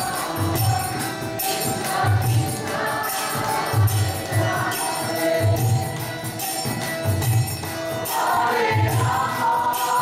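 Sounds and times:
women singing a chant: 0.0s - 5.6s, 8.1s - 10.0s
metallic jingling percussion: 0.0s - 10.0s.

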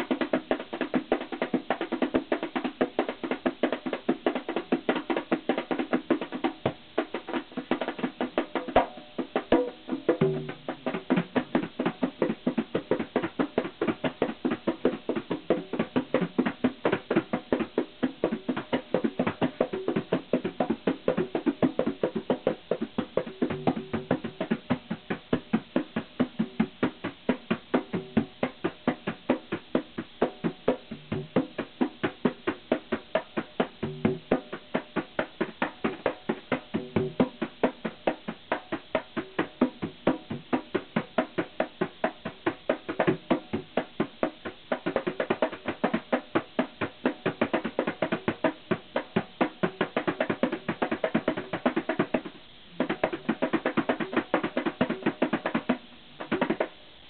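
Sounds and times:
congas played by hand: 0.0s - 57.0s.

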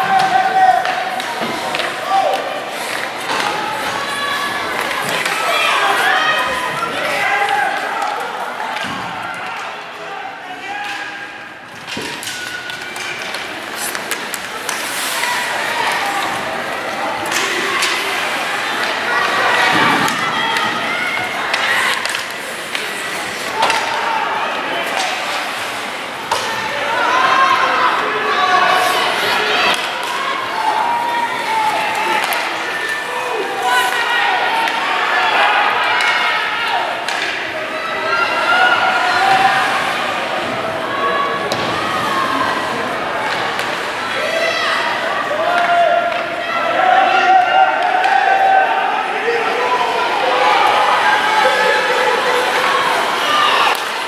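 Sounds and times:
crowd and players shouting: 0.0s - 54.0s.

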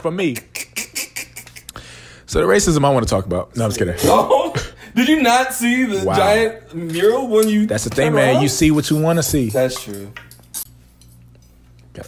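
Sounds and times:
silverware and plates clinking: 6.7s - 12.0s.

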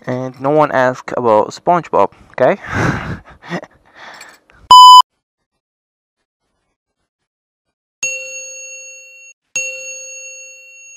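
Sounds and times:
metallic bell dings: 8.0s - 10.9s.

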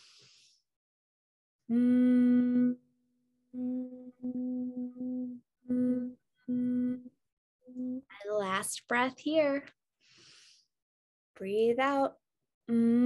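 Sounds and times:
person humming a low note: 1.7s - 2.9s, 3.5s - 7.1s, 7.7s - 8.1s, 12.7s - 13.0s.

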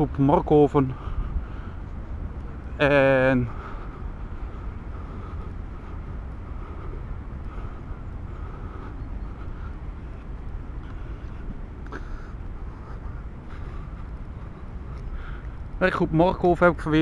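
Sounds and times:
distant activity murmur: 0.0s - 17.0s
low rumble: 0.9s - 15.9s.

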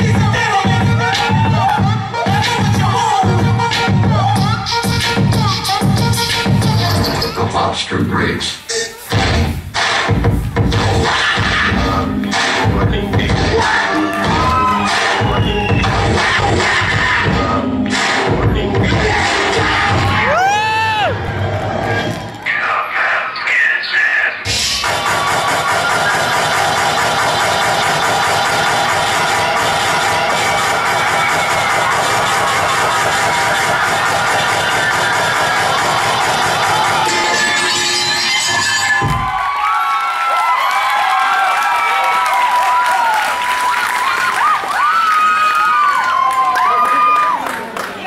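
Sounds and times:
loud dance music with steady beat: 0.0s - 39.6s
audience shouting and whooping: 0.5s - 3.3s, 13.5s - 17.3s, 19.0s - 22.5s, 24.8s - 47.8s.

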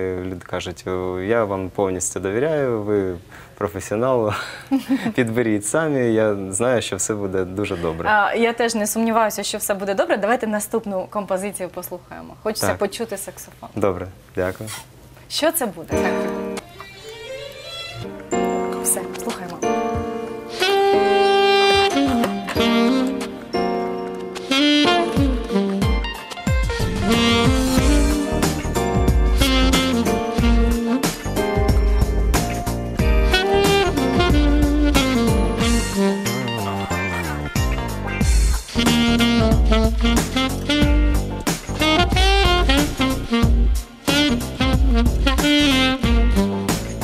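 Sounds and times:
saxophone melody: 15.9s - 47.0s
low backing beat: 18.0s - 47.0s
bass and drums: 25.0s - 47.0s.

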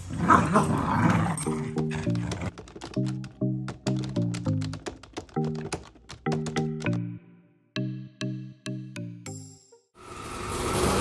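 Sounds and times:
background music: 0.2s - 10.0s.

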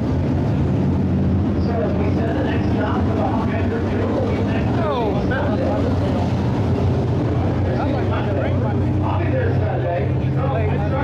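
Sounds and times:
race car engines droning: 0.0s - 11.0s
people talking: 1.6s - 11.0s.

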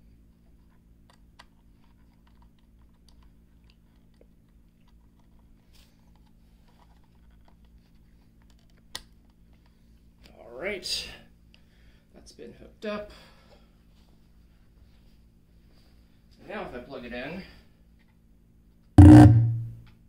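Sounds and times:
hands tapping on amplifier: 19.0s - 19.8s.

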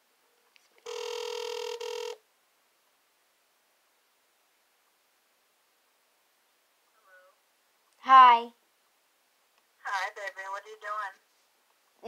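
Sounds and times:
phone ringback tone: 0.8s - 2.2s.

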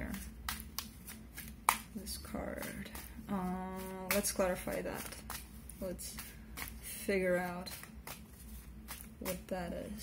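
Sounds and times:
cards being shuffled: 0.1s - 2.0s, 2.6s - 9.5s.

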